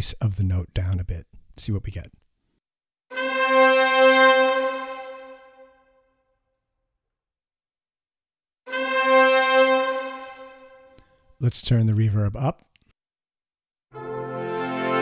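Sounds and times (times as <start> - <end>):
orchestral brass held note: 3.1 - 6.2, 8.7 - 11.2, 13.9 - 15.0.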